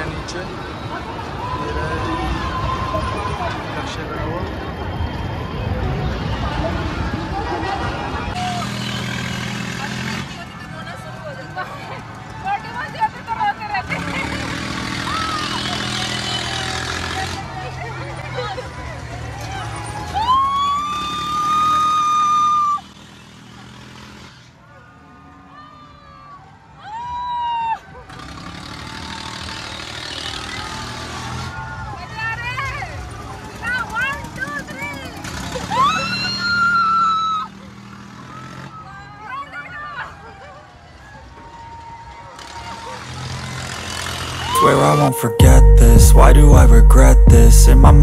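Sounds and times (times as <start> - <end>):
riders shrieking and whooping: 0.8 - 3.8, 4.5 - 9.2, 10.8 - 23.0, 24.8 - 44.6
long high scream: 20.2 - 22.8
pitched call or voice: 44.5 - 48.0
steady low rumble: 45.4 - 48.0.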